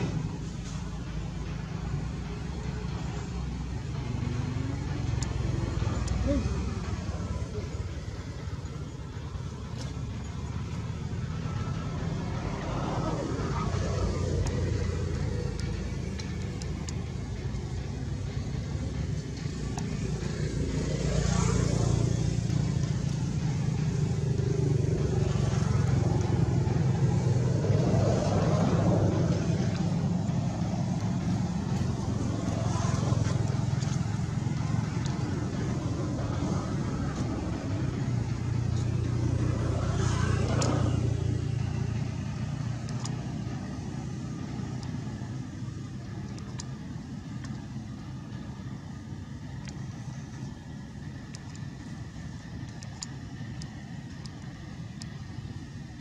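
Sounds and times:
low engine hum: 0.0 - 56.0
vehicles passing: 0.0 - 56.0.

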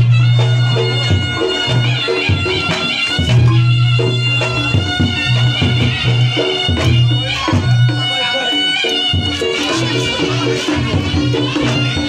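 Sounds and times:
sharp drum strokes: 0.0 - 12.0
shrill reed shawm melody: 0.0 - 12.0.

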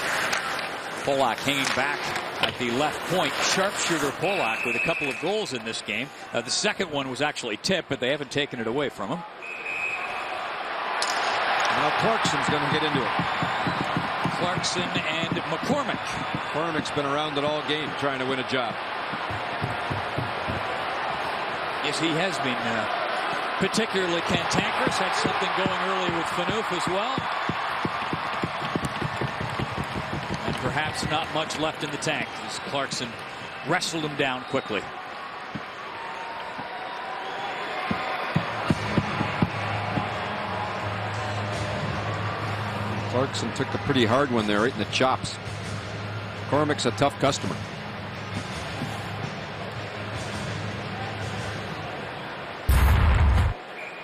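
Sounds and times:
arena crowd noise: 0.0 - 54.0
loud short boom: 52.7 - 53.6.

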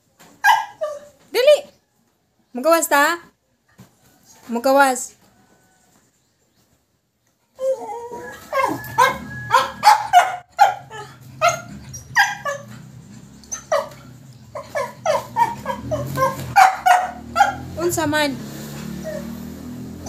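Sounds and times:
dog barking and yipping: 0.2 - 1.2, 7.8 - 20.0.

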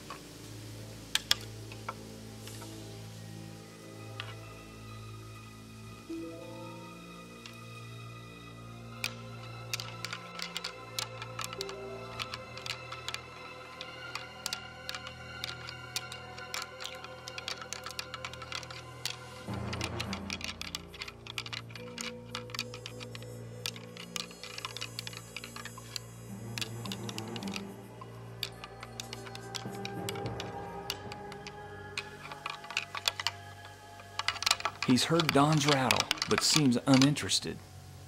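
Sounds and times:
background music sustained notes: 0.0 - 38.0
antlers rattled together: 9.0 - 37.5.

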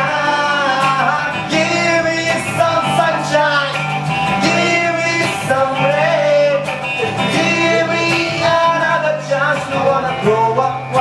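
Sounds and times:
guitar accompaniment: 0.0 - 11.0
man singing into a microphone: 0.0 - 11.0.

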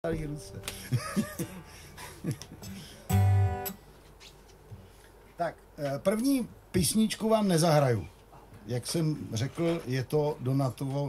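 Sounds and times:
acoustic guitar chord strummed: 2.6 - 3.8.

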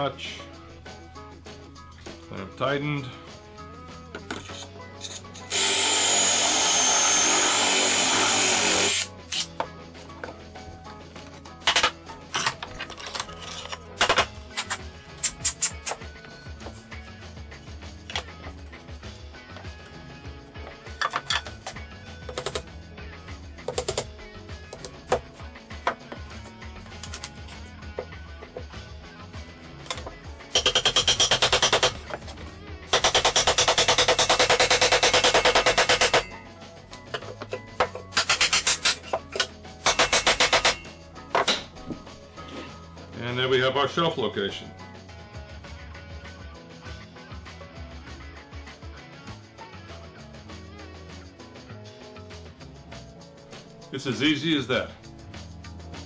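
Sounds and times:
cordless drill boring into wood: 5.5 - 9.1.

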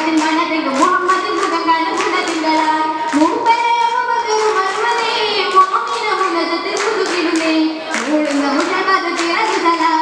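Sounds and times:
girls singing: 0.0 - 10.0
rhythmic hand claps: 0.0 - 10.0.

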